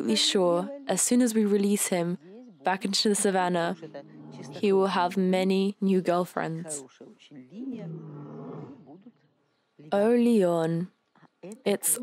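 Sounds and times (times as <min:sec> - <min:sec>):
person speaking: 0:00.0 - 0:06.8
lion roaring: 0:04.0 - 0:04.7, 0:07.7 - 0:09.0.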